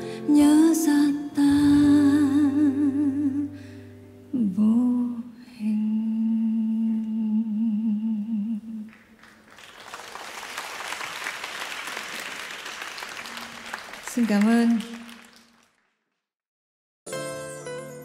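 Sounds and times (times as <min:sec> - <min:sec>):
woman singing with vibrato: 0:00.0 - 0:03.6, 0:04.4 - 0:08.9
audience applause: 0:08.9 - 0:16.1.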